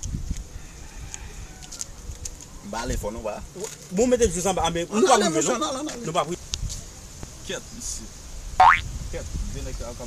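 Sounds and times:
cartoon boing: 0:08.6 - 0:08.8.

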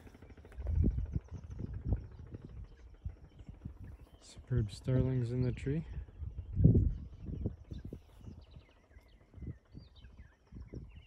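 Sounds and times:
birds chirping and whistling: 0:00.0 - 0:11.0.

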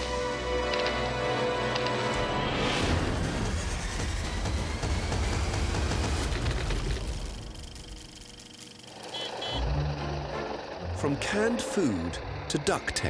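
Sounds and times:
rumbling low drone with crackle: 0:03.4 - 0:08.9.

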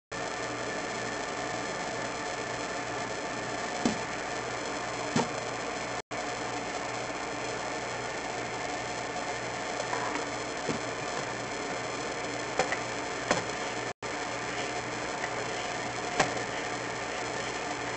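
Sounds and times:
electrical hiss and hum: 0:00.2 - 0:17.9.

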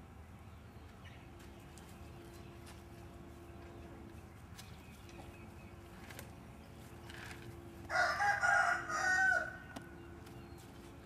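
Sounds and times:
rooster crowing: 0:07.9 - 0:09.8.

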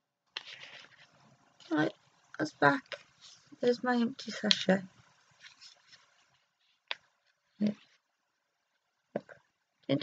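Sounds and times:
paper sachet rustling: 0:00.4 - 0:01.2.

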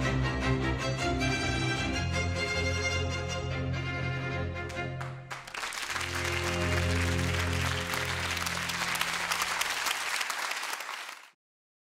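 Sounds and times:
closing music with low notes: 0:03.6 - 0:09.7
audience applause: 0:05.0 - 0:11.4.

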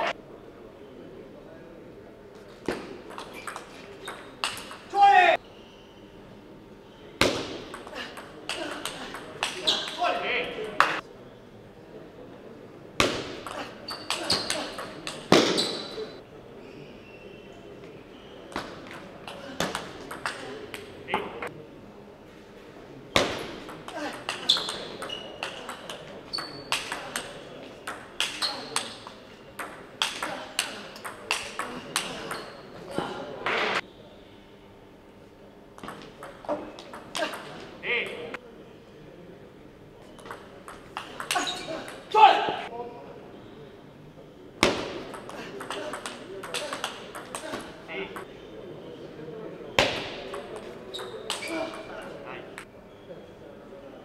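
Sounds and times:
player shouting: 0:04.9 - 0:05.4, 0:42.1 - 0:42.6
table tennis ball struck: 0:07.2 - 0:09.6, 0:13.0 - 0:15.6.

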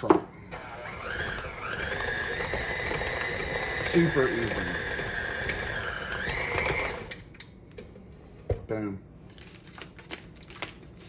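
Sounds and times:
stand mixer motor whining: 0:00.5 - 0:07.3.

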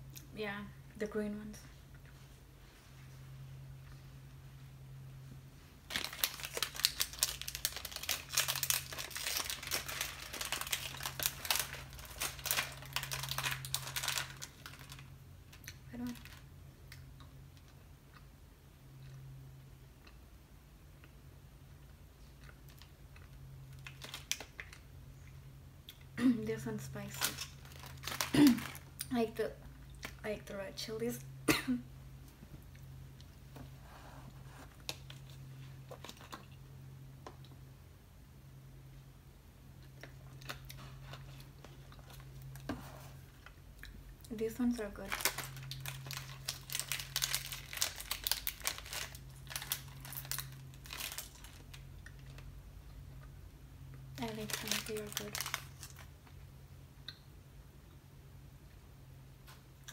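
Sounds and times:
low steady hum: 0:00.0 - 0:59.9
plastic pouch crinkling: 0:05.9 - 0:15.1, 0:23.7 - 0:24.8, 0:27.0 - 0:28.9, 0:44.9 - 0:52.5, 0:54.2 - 0:56.1
candy crunching while chewed: 0:05.9 - 0:18.3, 0:21.8 - 0:26.1, 0:27.0 - 0:29.1, 0:39.7 - 0:42.7, 0:43.3 - 0:53.3, 0:53.9 - 0:56.1.

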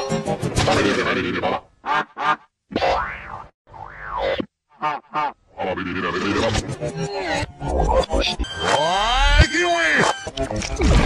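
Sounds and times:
cartoon boing tones: 0:02.7 - 0:04.5
springy cartoon blips: 0:02.7 - 0:04.5.

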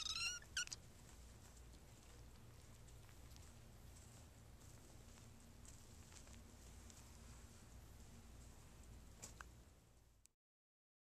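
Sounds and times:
kitten mewing: 0:00.0 - 0:00.8.

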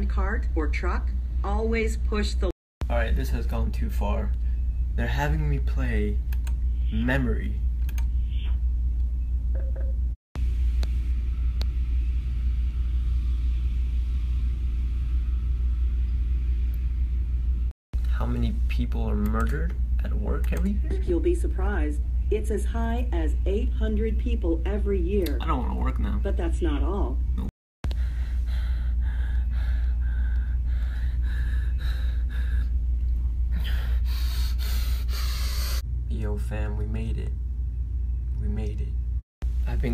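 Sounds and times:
low rumble: 0:03.1 - 0:34.1.

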